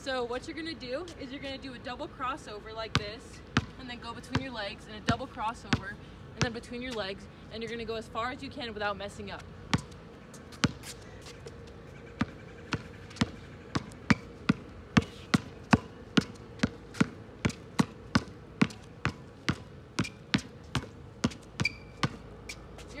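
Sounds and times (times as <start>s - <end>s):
basketball bouncing on hard court: 2.9s - 6.7s, 9.7s - 10.0s, 10.6s - 10.8s, 12.2s - 22.3s.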